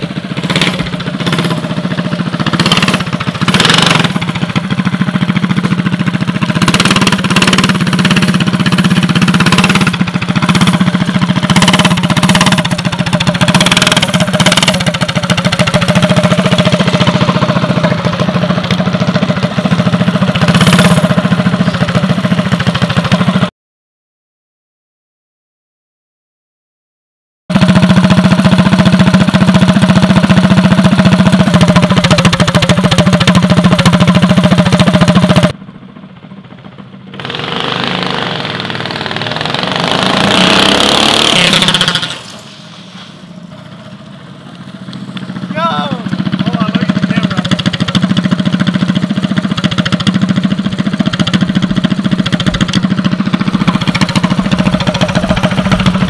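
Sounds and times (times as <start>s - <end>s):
go-kart engine: 0.0s - 23.5s, 27.5s - 56.0s.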